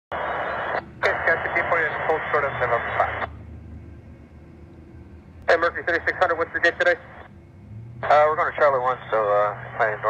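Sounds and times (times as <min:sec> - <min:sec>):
radio static hiss: 0:00.1 - 0:03.4, 0:05.5 - 0:07.3, 0:08.0 - 0:10.0
low steady rumble: 0:00.1 - 0:10.0
tinny radio voice: 0:00.6 - 0:03.3, 0:08.0 - 0:10.0.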